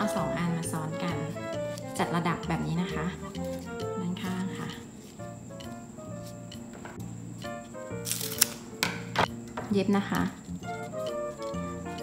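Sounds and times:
soft background music: 0.0s - 12.0s
banana leaf crinkling: 8.0s - 8.8s.

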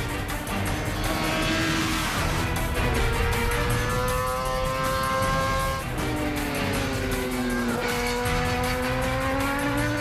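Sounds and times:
background music: 0.0s - 10.0s
motorbike engine running hard: 0.0s - 10.0s.

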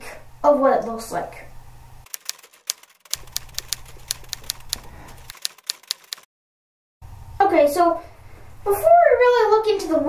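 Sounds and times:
typewriter keys clacking: 2.1s - 6.3s.

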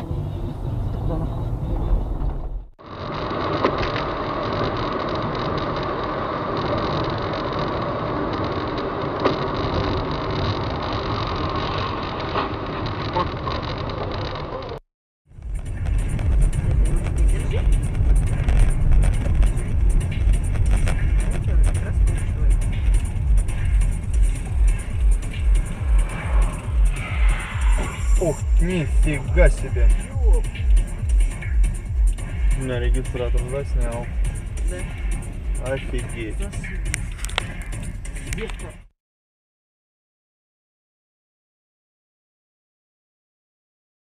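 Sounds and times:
vehicle noise: 0.0s - 38.9s
music with heavy bass beat: 15.3s - 38.9s.

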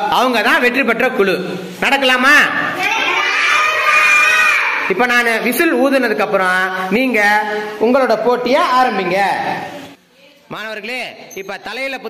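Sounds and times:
children shouting in unison: 2.8s - 4.9s.

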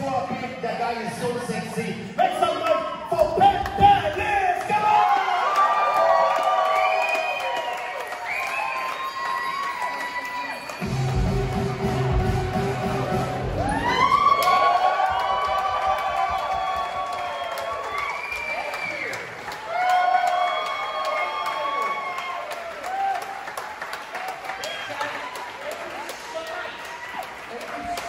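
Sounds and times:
audience cheering and applauding: 3.1s - 28.0s
music playing: 10.7s - 14.5s
heavy bass beat: 10.8s - 14.1s.

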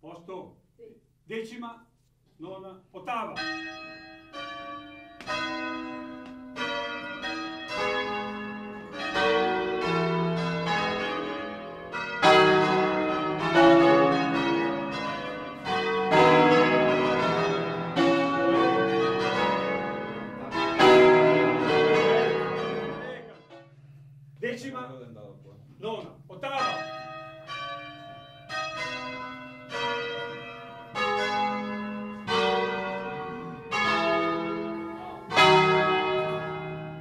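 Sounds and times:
church bells ringing: 3.1s - 25.4s, 26.2s - 37.0s.

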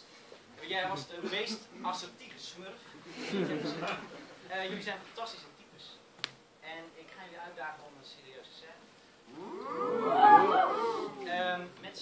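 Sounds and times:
audience oohing: 9.3s - 11.4s.

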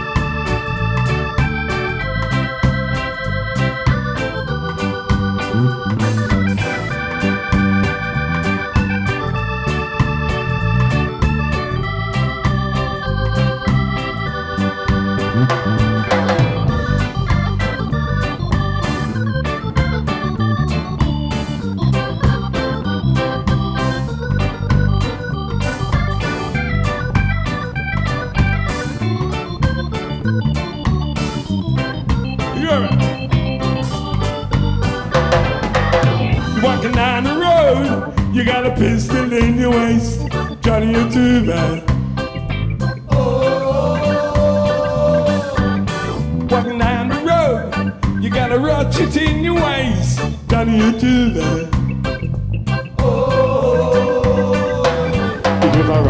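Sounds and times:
electric organ chords: 0.0s - 56.0s
reggae band playing: 0.0s - 56.0s.

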